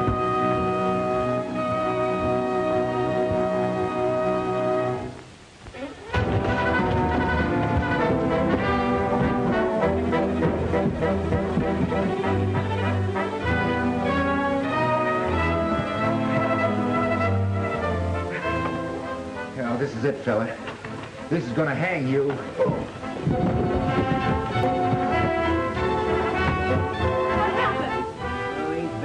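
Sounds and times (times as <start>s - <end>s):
orchestral music with brass: 0.0s - 5.2s, 6.0s - 29.0s.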